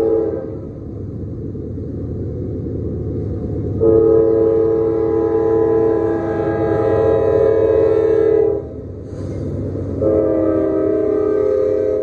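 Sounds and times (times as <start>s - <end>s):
locomotive air horn blasts: 0.0s - 0.7s, 3.8s - 8.8s, 9.9s - 12.0s
diesel locomotives rumbling: 0.0s - 12.0s.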